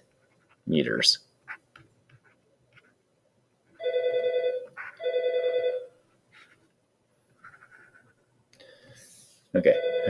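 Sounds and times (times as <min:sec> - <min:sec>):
telephone ringing: 0:03.8 - 0:05.9, 0:09.7 - 0:10.0.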